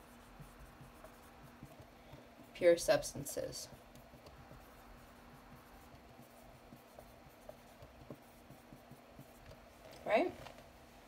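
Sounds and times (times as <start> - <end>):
marker scratching on whiteboard: 0.0 - 9.8
low steady hum: 0.0 - 11.0.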